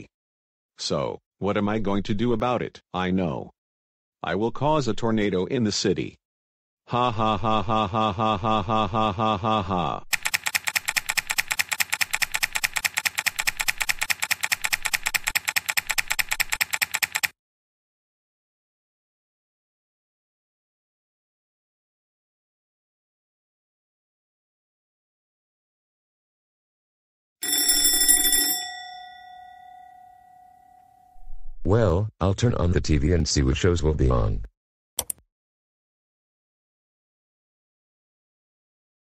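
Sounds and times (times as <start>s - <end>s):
rapid laptop keyboard typing: 10.1s - 17.4s
bell ringing: 27.4s - 31.3s.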